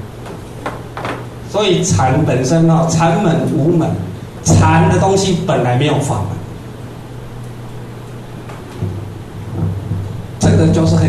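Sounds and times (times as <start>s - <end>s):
low hum: 0.0s - 11.0s
rumbling hiss: 0.0s - 11.0s
faint low bumps: 7.8s - 11.0s.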